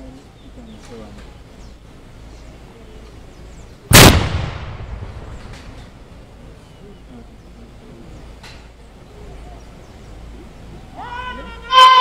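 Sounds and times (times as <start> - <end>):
loud gunshot with echo: 3.9 - 5.7.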